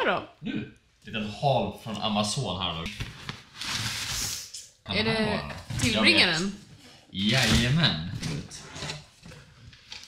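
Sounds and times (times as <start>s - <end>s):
packing paper and cardboard rustling: 3.0s - 4.6s.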